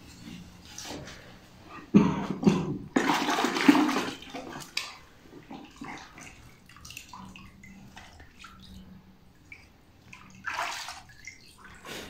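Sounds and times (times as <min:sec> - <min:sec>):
liquid sloshing in metal bucket: 0:02.3 - 0:08.9, 0:09.5 - 0:11.9.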